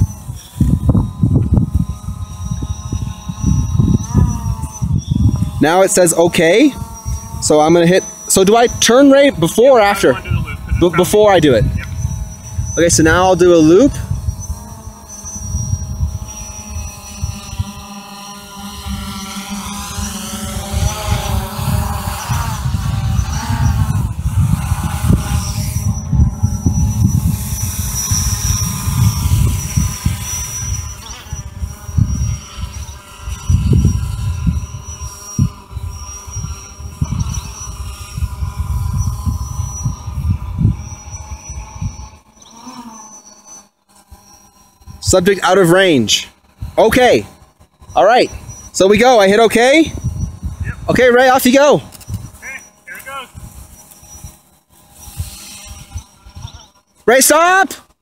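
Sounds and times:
wind buffeting microphone: 0.0s - 42.3s, 44.8s - 56.8s
drone propeller whine: 0.0s - 58.0s.

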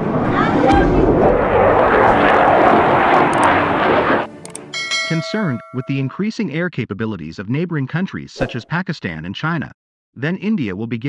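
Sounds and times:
fighter jet engine roar: 0.0s - 4.6s.

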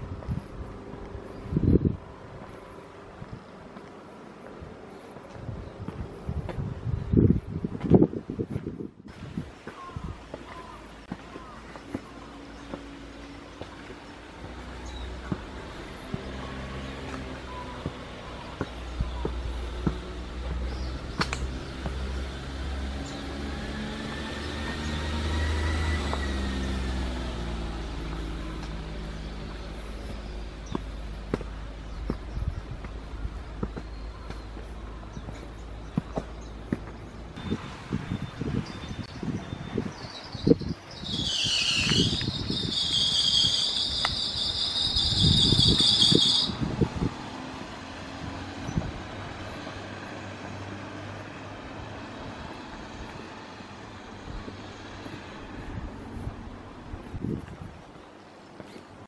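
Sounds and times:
wind gusts on microphone: 0.0s - 3.6s, 4.6s - 10.4s, 36.4s - 58.2s
faint outdoor hum: 0.0s - 7.8s
car engine droning: 10.6s - 38.6s
shrill insect buzz: 41.0s - 46.5s.

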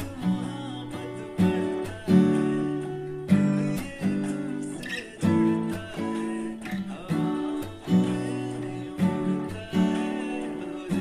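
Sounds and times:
acoustic guitar strumming chords: 0.0s - 11.0s
muted percussive guitar chucks: 1.3s - 11.0s.

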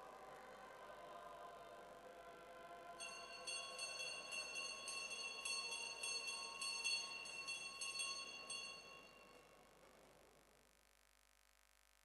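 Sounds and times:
small bell ringing rapidly: 3.0s - 9.3s.

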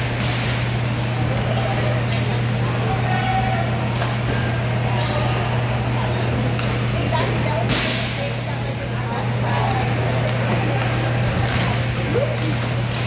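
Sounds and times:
hockey sticks clacking on puck: 6.5s - 6.8s.

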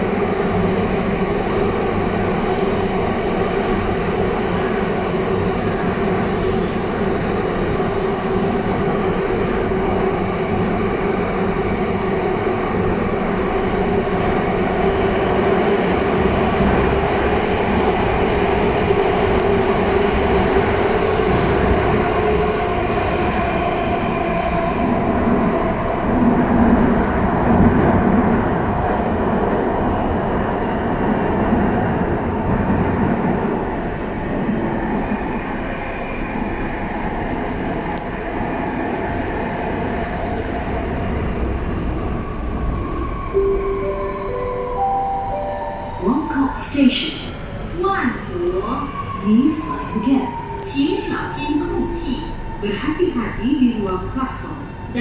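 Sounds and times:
rumble of wheels on rail: 0.0s - 55.0s.

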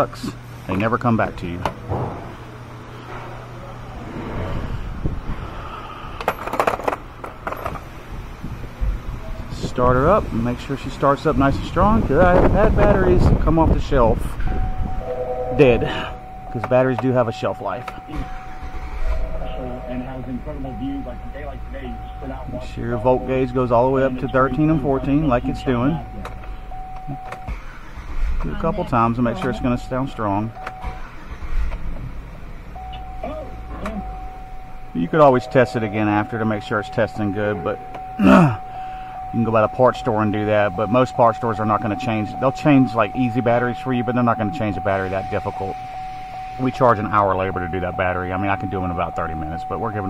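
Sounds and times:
car engine idling: 0.0s - 50.0s
low steady hum: 0.0s - 50.0s
high whine: 8.8s - 31.2s, 32.7s - 50.0s.

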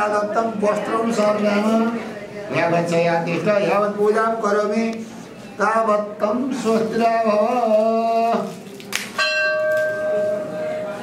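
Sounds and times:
metal temple bell ringing: 9.2s - 11.0s.

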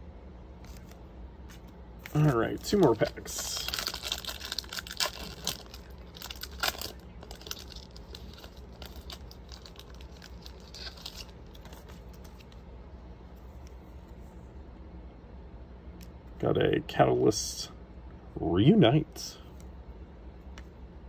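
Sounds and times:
handling of cards: 0.5s - 12.7s
wrapper tearing and crinkling: 2.1s - 12.4s.

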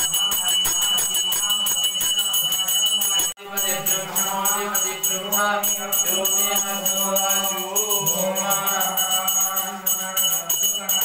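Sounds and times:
bell rung rapidly: 0.0s - 11.0s.

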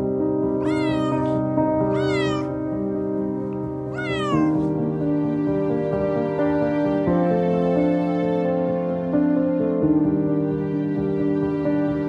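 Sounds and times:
kitten meowing: 0.6s - 2.6s, 3.9s - 4.8s.

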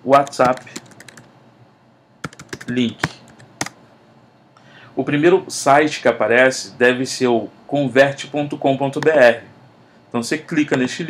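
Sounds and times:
computer keyboard keystrokes: 0.2s - 1.3s, 2.2s - 3.8s.

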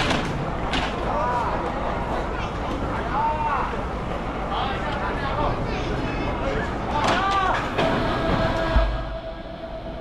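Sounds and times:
crane hoist whine: 7.7s - 10.0s
low mechanical rumble: 7.7s - 10.0s
heavy low thud: 7.8s - 10.0s.

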